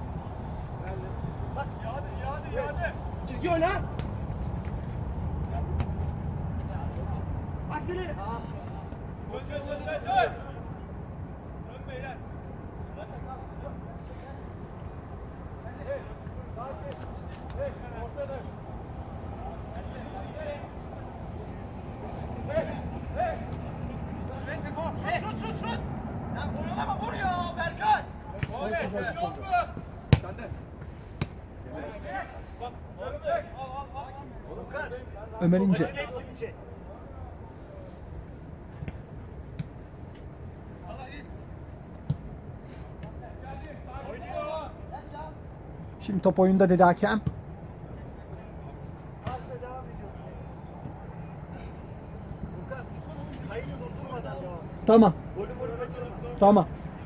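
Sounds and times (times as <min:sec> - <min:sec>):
footballers shouting: 0:00.6 - 0:10.9, 0:15.3 - 0:38.0
ball being kicked: 0:30.1 - 0:31.4.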